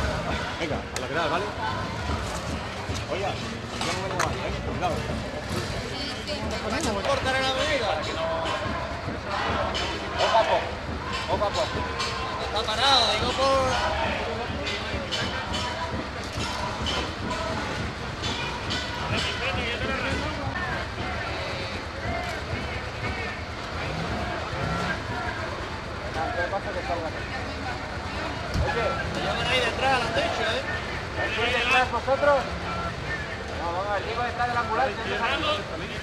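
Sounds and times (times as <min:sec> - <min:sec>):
crowd shouting and talking: 0:00.0 - 0:36.0
low rumble of street traffic: 0:00.0 - 0:36.0.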